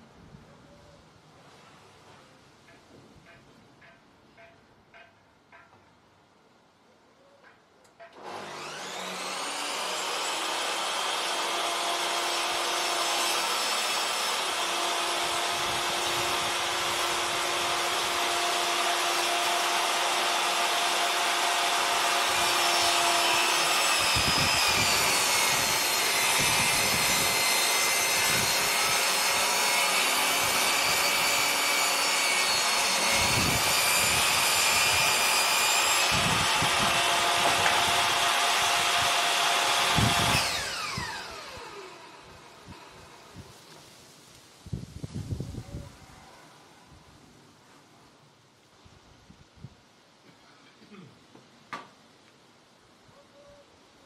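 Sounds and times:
saw motor winding down: 8.2 - 43.3
table saw cutting wood: 8.2 - 43.3.

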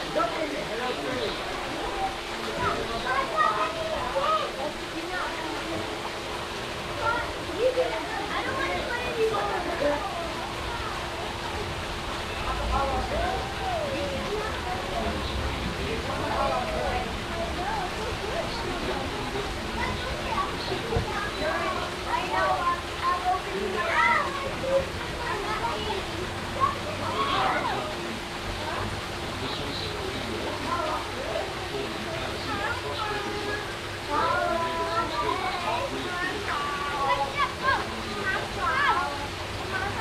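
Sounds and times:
chatter of children and adults: 0.0 - 40.0
waterfall pouring into pool: 0.0 - 40.0.

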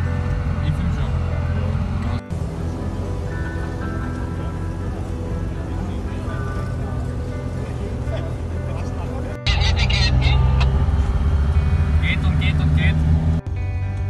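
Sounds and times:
background music: 0.0 - 14.0
truck engine driving past: 0.0 - 14.0.

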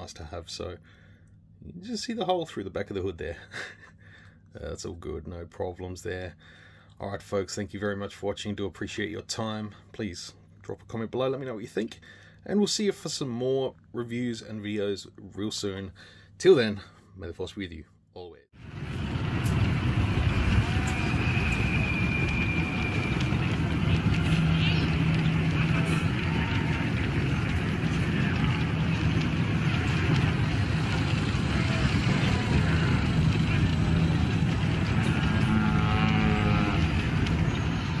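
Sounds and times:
low rumble of vehicles and machinery: 0.0 - 17.7, 18.6 - 38.0
indistinct voices: 20.5 - 38.0.

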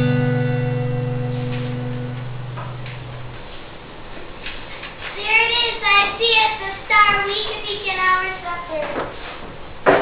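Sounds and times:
acoustic guitar chord ringing: 0.0 - 3.6.

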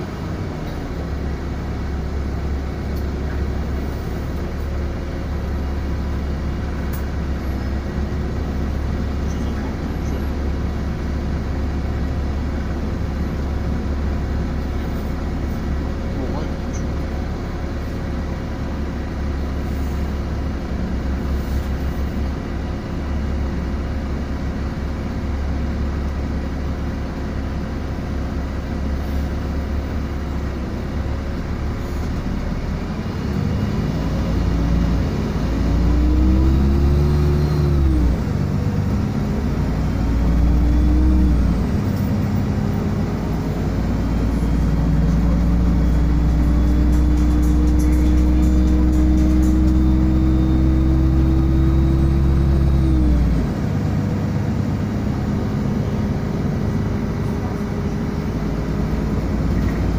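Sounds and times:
bus engine rumble and whine: 0.0 - 59.9.

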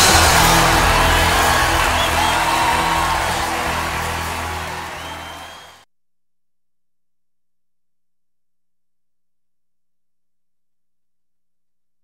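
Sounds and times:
gospel band final chord: 0.0 - 5.8.

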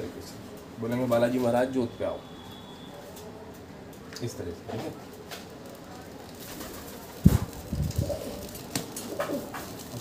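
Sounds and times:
pigeon cooing: 7.3 - 9.6.

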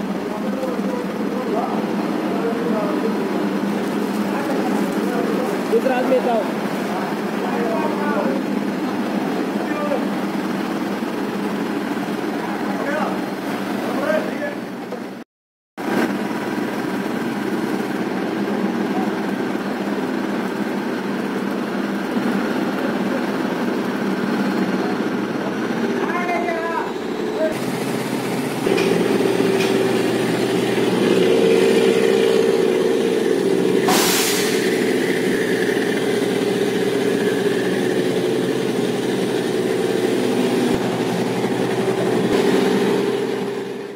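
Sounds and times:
diesel engine running: 0.0 - 15.2, 15.8 - 43.9
short hiss: 33.9 - 34.6.

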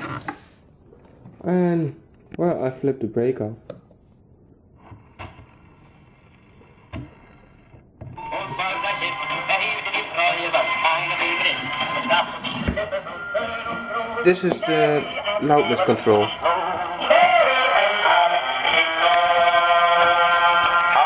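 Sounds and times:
gramophone music: 8.2 - 21.0.

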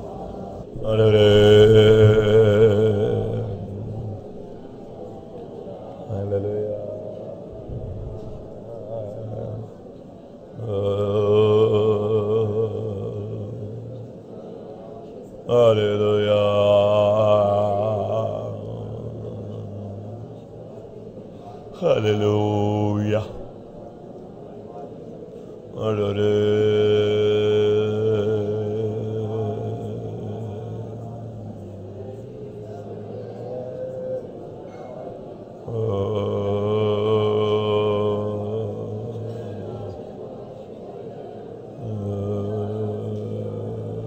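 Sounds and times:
man chanting long note: 0.0 - 23.9, 25.7 - 44.0.

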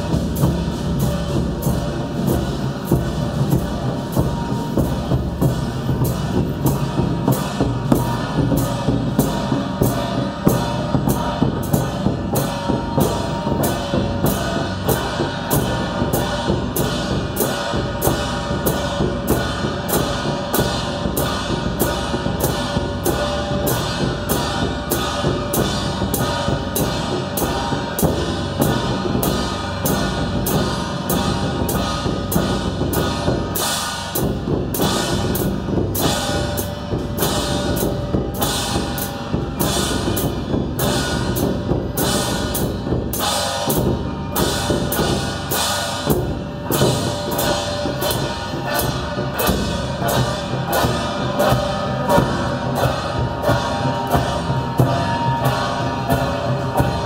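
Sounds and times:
drum beating: 0.0 - 57.0
gongs and cymbals struck: 0.0 - 57.0.

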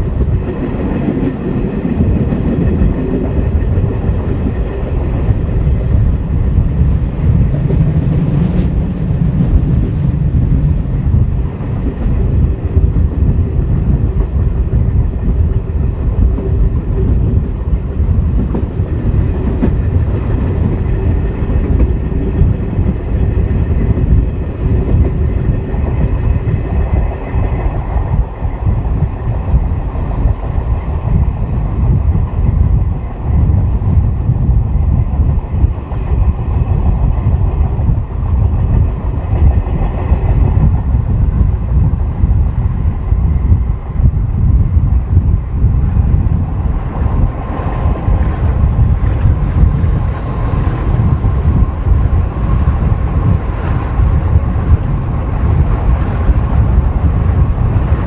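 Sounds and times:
clickety-clack of wheels on rails: 0.0 - 58.0
diesel locomotive engine running: 0.0 - 58.0
heavy rumble of moving train: 0.0 - 58.0.

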